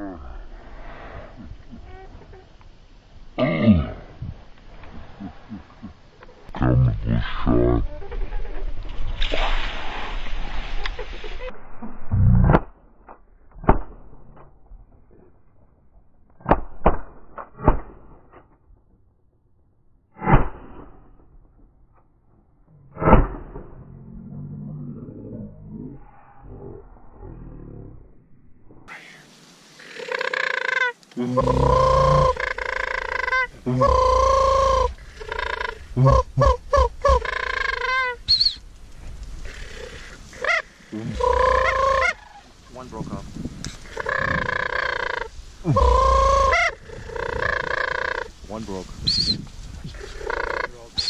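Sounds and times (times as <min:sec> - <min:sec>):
crane call on mouth caller: 0:29.8 - 0:38.6, 0:39.5 - 0:42.5, 0:43.8 - 0:48.4, 0:50.0 - 0:51.0.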